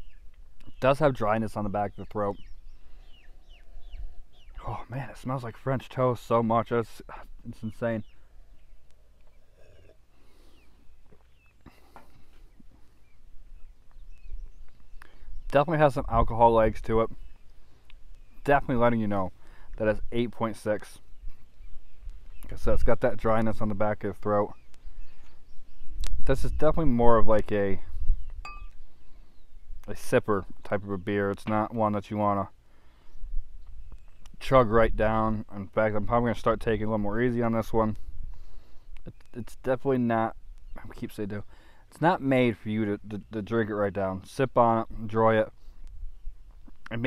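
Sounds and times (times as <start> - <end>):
faint bird chirps: 0.0 - 19.8, 20.8 - 26.6, 27.8 - 31.4, 32.4 - 34.5
man gulping and breathing: 9.3 - 12.4
glass bottle clinking against glass: 28.4 - 28.8.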